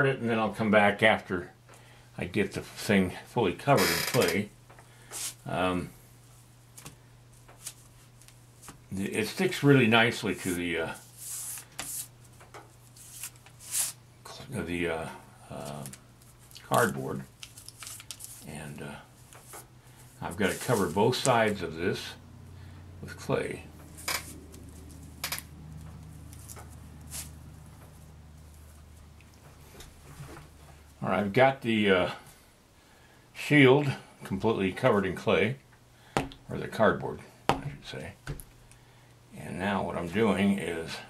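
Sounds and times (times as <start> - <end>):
steady low hum: 0.0 - 41.0
hands rubbing clay on cardboard: 5.1 - 5.4, 10.3 - 12.2, 12.8 - 14.0, 19.2 - 21.6, 26.3 - 27.4.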